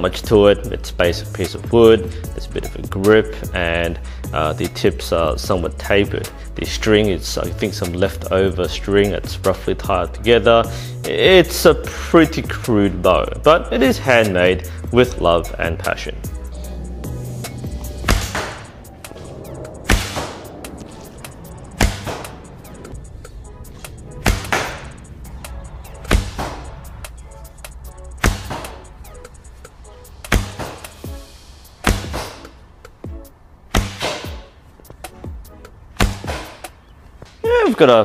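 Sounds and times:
background music: 0:00.0 - 0:38.0
bow string snapping with thud: 0:18.0 - 0:18.7, 0:19.9 - 0:20.4, 0:24.2 - 0:24.9, 0:28.2 - 0:28.9, 0:31.8 - 0:32.5, 0:33.7 - 0:34.5.

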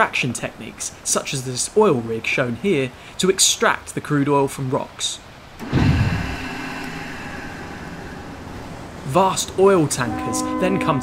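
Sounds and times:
low thud: 0:05.6 - 0:06.7
oil rig drilling machinery hum: 0:05.6 - 0:09.2.

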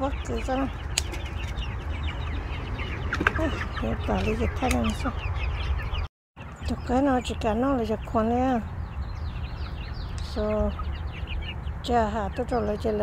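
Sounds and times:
young chickens peeping and clucking: 0:00.0 - 0:13.0.

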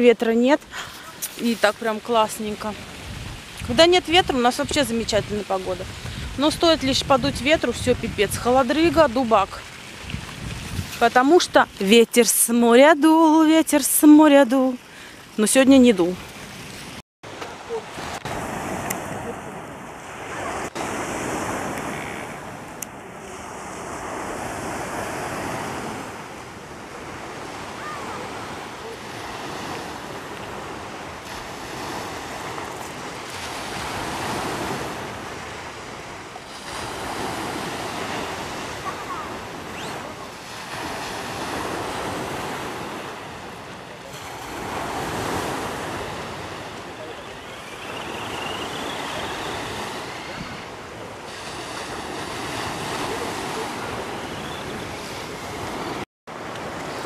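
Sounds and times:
waves washing on gravel beach: 0:00.6 - 0:57.0.

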